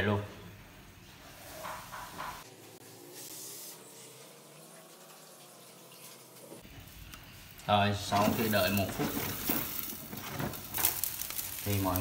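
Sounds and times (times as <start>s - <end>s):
batter sizzling in a pan: 1.3s - 12.0s.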